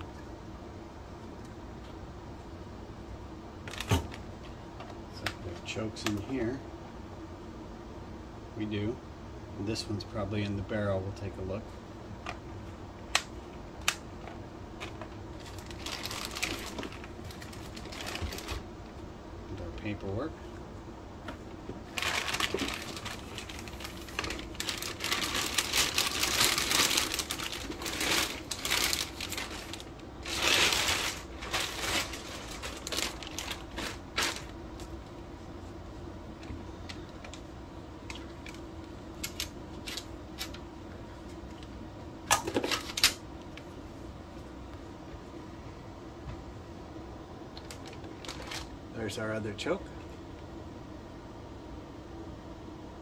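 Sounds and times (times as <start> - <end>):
plastic bag crinkling: 14.9 - 18.6, 21.8 - 35.0, 47.6 - 48.7.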